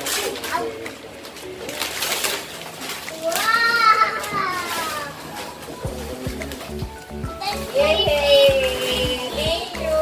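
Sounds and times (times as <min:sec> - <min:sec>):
gift wrapping rustling and tearing: 0:00.0 - 0:06.8.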